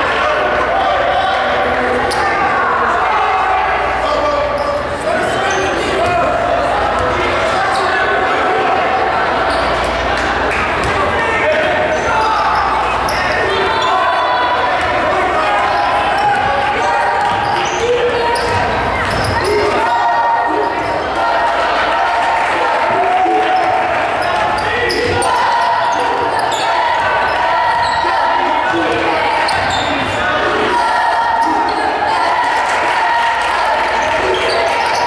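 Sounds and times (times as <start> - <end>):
chatter in a large gym: 0.0 - 35.0.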